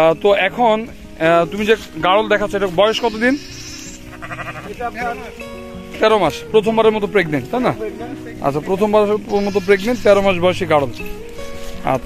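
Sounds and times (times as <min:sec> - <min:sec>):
sheep bleating: 0:02.8 - 0:05.4, 0:09.0 - 0:10.5.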